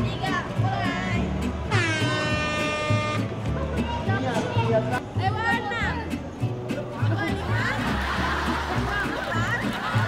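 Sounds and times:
air horn blaring: 1.7s - 3.3s.

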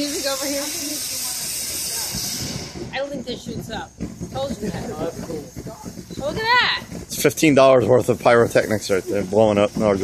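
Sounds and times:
firework fountain hissing: 0.0s - 10.0s.

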